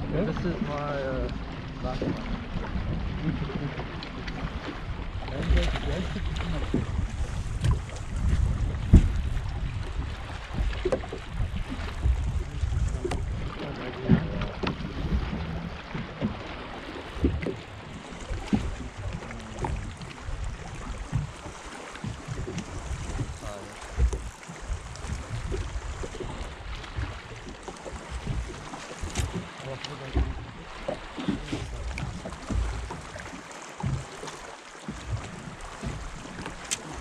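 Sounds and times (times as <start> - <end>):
wind rumbling on microphone: 0.0 - 34.3, 34.9 - 37.0
knocks and thumps on boat: 0.0 - 37.0
water lapping against boat hull: 0.0 - 37.0.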